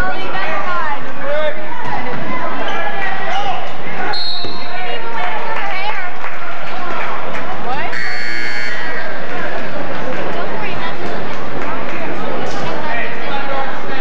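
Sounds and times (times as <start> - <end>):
crowd chatter: 0.0 - 14.0
scoreboard buzzer: 7.9 - 8.9.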